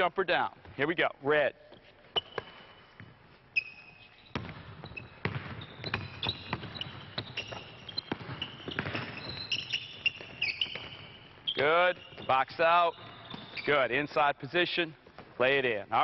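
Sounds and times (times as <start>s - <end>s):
sneakers squeaking on gym floor: 1.6s - 15.7s
basketball bouncing: 4.3s - 12.4s, 13.0s - 13.7s.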